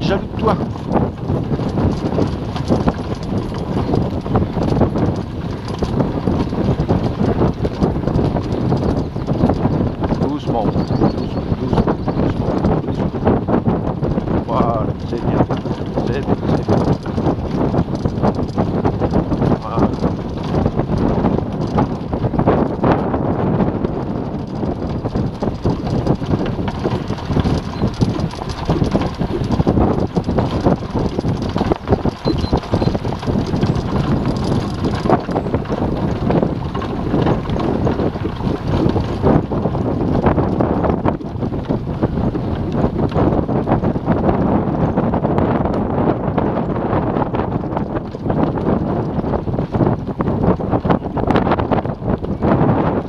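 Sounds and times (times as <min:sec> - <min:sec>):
cart rattling on dirt track: 0:00.0 - 0:53.0
wind buffeting microphone: 0:00.0 - 0:53.0.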